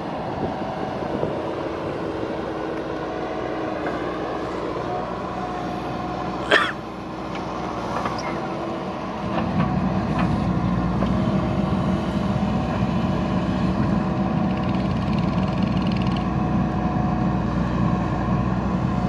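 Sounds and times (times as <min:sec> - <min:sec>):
diesel engine under load: 0:00.0 - 0:19.0.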